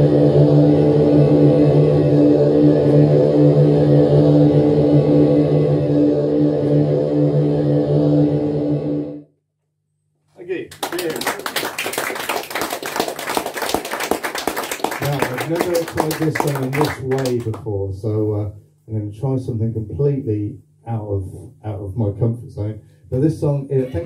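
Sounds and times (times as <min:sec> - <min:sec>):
musical drone: 0:00.0 - 0:09.2
audience applause: 0:10.7 - 0:17.6.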